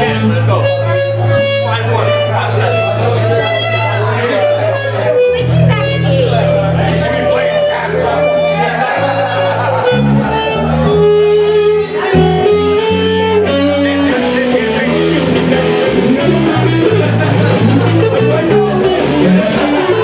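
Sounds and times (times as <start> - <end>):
electric guitar melody: 0.0 - 20.0
live band playing: 0.0 - 20.0.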